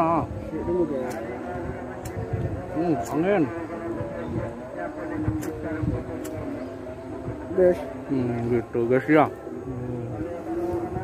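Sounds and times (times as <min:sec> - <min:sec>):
low steady drone: 0:00.0 - 0:11.0
wind buffeting microphone: 0:00.0 - 0:11.0.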